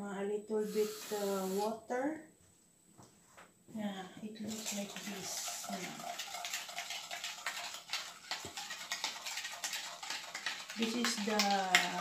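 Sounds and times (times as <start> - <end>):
fizzing liquid: 4.5 - 12.0.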